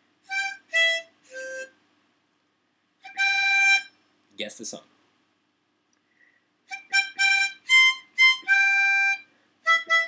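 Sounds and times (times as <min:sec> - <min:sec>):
harmonica notes: 0:00.2 - 0:01.9, 0:03.0 - 0:04.0, 0:06.2 - 0:10.0.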